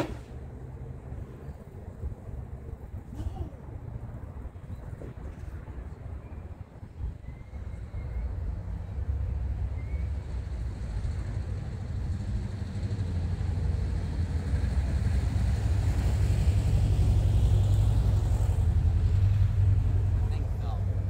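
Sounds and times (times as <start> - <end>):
passing road vehicle rumble: 0.0 - 21.0.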